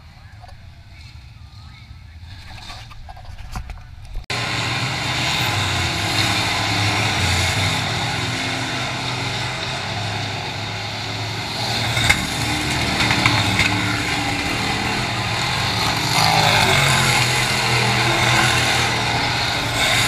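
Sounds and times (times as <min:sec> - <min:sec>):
race car engines: 0:03.8 - 0:20.0.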